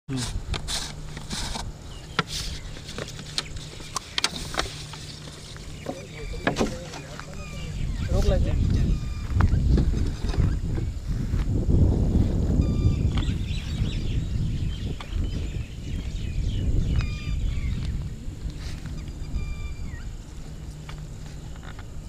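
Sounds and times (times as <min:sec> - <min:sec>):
high-pitched animal calls: 0:05.6 - 0:09.6, 0:18.6 - 0:20.2
wind on phone microphone: 0:05.7 - 0:22.0.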